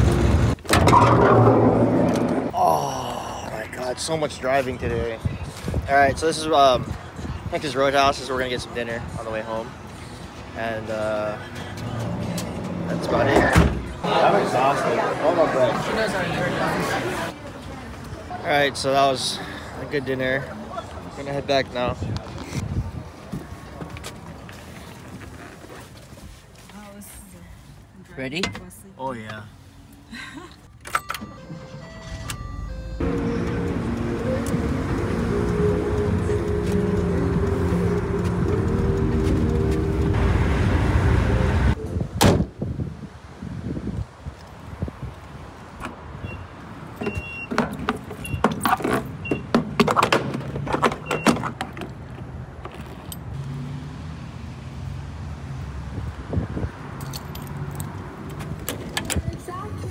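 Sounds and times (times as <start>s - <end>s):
keys and door handles clicking: 30.7s - 32.6s
car engine starting and running: 30.8s - 41.8s.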